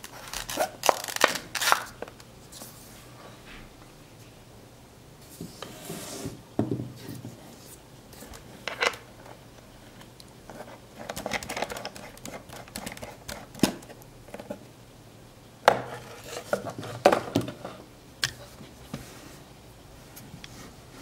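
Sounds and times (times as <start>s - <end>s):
plastic crackling: 0.0s - 2.3s.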